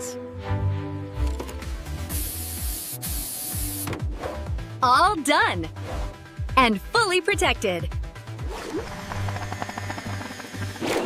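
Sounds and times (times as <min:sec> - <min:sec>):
background music: 0:00.0 - 0:11.0
paint spray gun hissing: 0:02.1 - 0:03.9.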